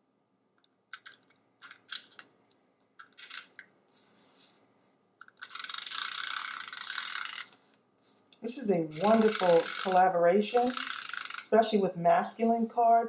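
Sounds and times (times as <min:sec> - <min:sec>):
tape runner clicks and scrapes: 0:03.0 - 0:03.6, 0:08.9 - 0:11.5
tape runner rasping along paper: 0:08.9 - 0:11.4.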